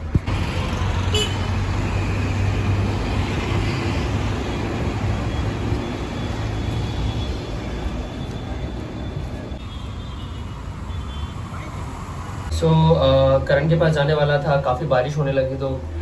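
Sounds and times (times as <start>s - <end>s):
road traffic passing: 0.0s - 16.0s.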